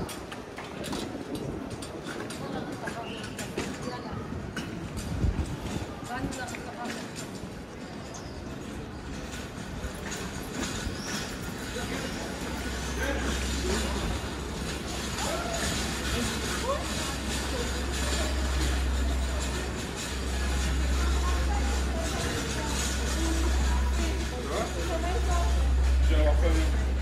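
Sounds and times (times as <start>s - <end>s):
passers-by talking: 0.0s - 27.0s
steady low rumble: 9.1s - 27.0s.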